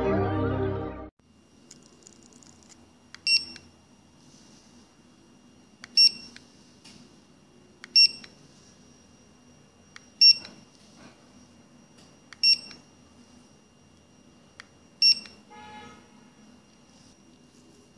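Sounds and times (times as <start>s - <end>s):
barcode scanner beeps: 3.2s - 3.7s, 5.9s - 6.4s, 7.8s - 8.4s, 9.9s - 10.6s, 12.3s - 12.9s, 14.7s - 15.4s.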